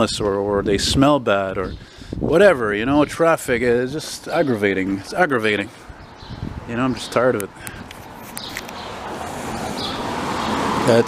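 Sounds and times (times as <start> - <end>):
car tyre and road noise: 2.0 - 11.0.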